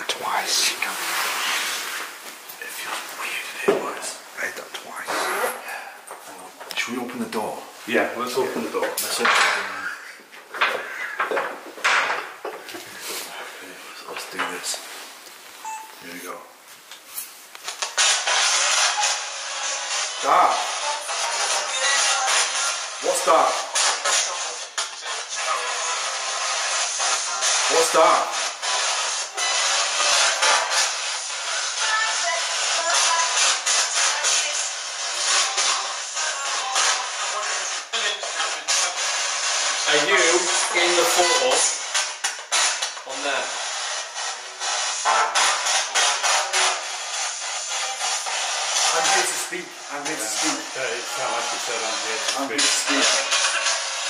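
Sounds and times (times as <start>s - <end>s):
garbled voice fragments: 2.6s - 7.0s
chopped radio static: 2.7s - 5.9s, 6.6s - 12.2s, 44.8s - 54.0s.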